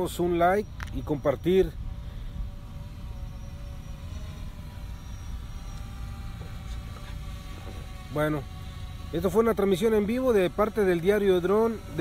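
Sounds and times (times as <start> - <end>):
faint wavering hum: 0.0 - 12.0.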